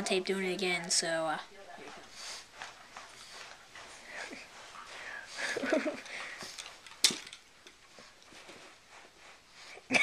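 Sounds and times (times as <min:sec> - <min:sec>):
dog rustling on rug: 0:00.5 - 0:07.0, 0:07.6 - 0:09.8.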